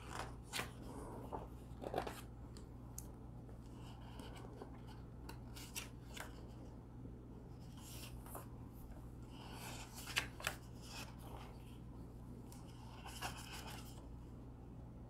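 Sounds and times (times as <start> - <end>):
book pages rustling: 0.0 - 2.7, 3.5 - 6.7, 7.6 - 11.8, 12.4 - 14.1
steady low hum: 0.0 - 15.0.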